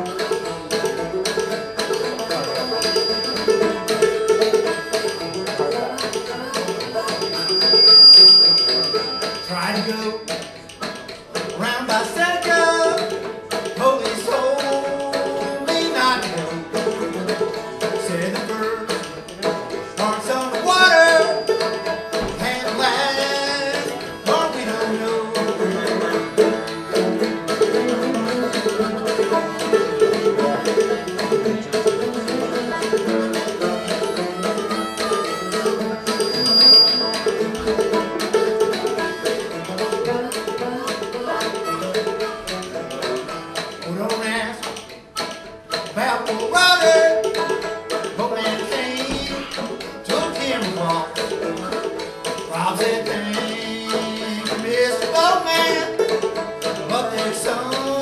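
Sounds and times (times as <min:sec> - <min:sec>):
harmonica: 0:00.0 - 0:44.1, 0:44.7 - 0:58.0
banjo: 0:00.0 - 0:58.0.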